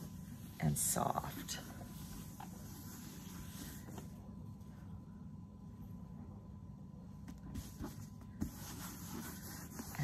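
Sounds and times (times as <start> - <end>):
cloth rubbing on canvas: 0.0 - 4.2, 7.5 - 10.0
low steady hum: 0.0 - 10.0.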